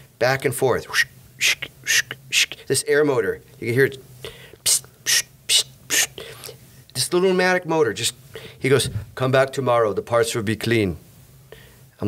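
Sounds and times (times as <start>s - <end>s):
man making hissing mouth sounds: 0.8s - 2.8s, 4.2s - 6.6s.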